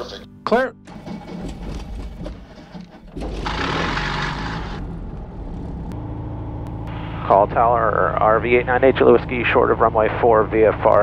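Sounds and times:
propeller aircraft engine running: 0.8 - 11.0.

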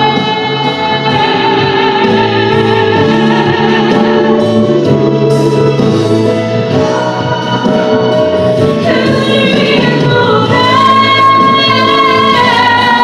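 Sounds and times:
woman singing into a microphone: 0.0 - 5.8, 6.7 - 13.0
instrumental accompaniment: 0.0 - 13.0.

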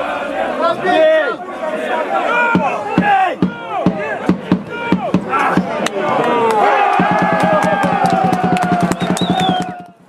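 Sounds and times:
people shouting: 0.0 - 10.0
bass drum beating: 2.6 - 5.8, 7.0 - 10.0.

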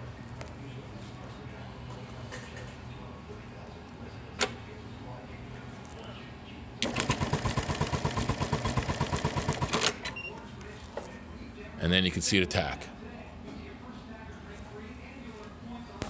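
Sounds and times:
sewing machine stitching: 6.8 - 10.0.

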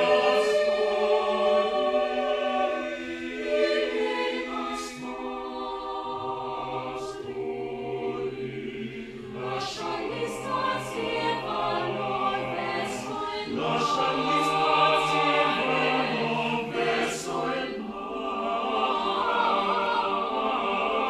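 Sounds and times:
choir singing a cappella: 0.0 - 21.0.

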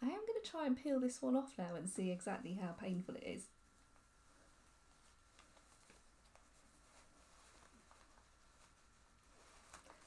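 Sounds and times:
faint ticks and rustles: 2.8 - 10.0.

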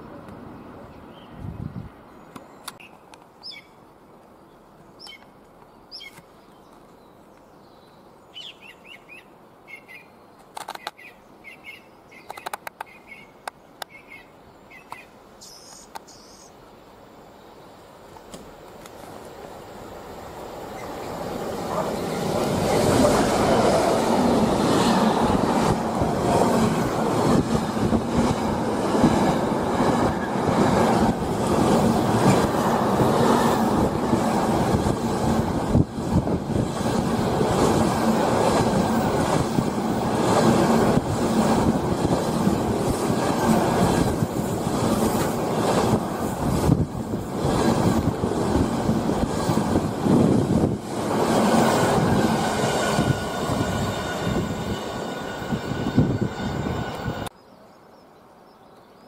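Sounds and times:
train wheels rumbling on rails: 20.2 - 57.3
high wheel squeal: 52.7 - 57.3.

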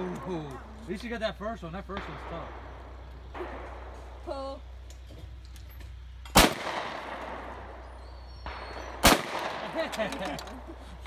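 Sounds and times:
shotgun shots with echo: 6.3 - 7.8, 8.4 - 10.0.

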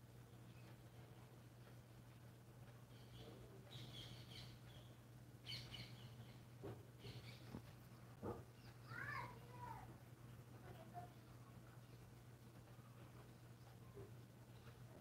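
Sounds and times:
distant bird calls: 0.0 - 15.0
low steady hum: 0.0 - 15.0.

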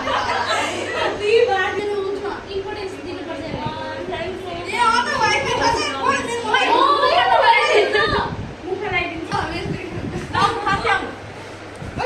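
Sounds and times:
young women's excited voices: 4.7 - 11.2.

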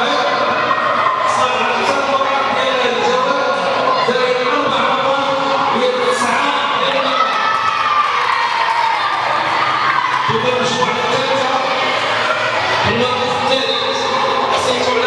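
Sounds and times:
children cheering and shouting: 0.0 - 15.0.

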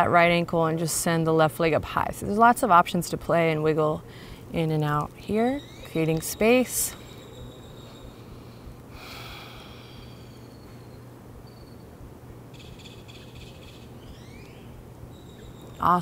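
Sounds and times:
steady low hum: 0.0 - 16.0
soft breath: 4.0 - 4.5, 8.1 - 10.8
faint high chirps: 5.6 - 8.6, 10.0 - 12.0, 12.6 - 16.0.

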